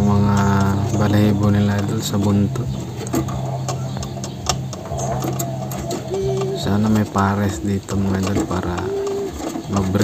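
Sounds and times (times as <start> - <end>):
birds tapping on wooden perches: 0.0 - 10.0
steady low hum: 0.0 - 10.0.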